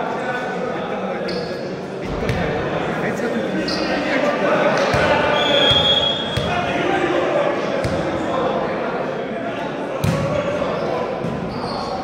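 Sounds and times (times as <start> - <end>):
echoing chatter of people: 0.0 - 12.0
referee's whistle: 5.3 - 6.5.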